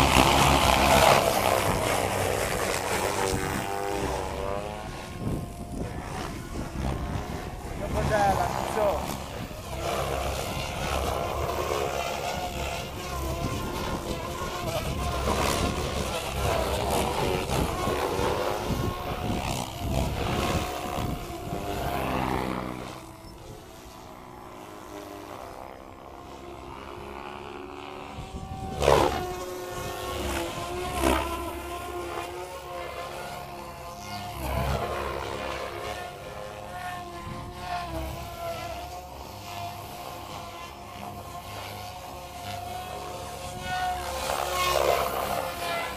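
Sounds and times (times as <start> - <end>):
model helicopter rotor whine: 0.0 - 45.9.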